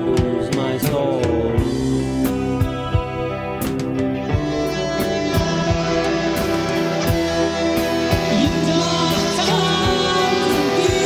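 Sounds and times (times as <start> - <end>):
steady drum beat: 0.0 - 11.0
sustained guitar chords: 0.0 - 11.0.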